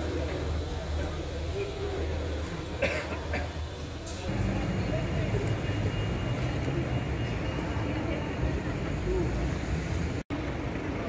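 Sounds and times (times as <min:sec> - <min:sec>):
people talking: 0:00.0 - 0:09.6
low street rumble: 0:00.0 - 0:11.0.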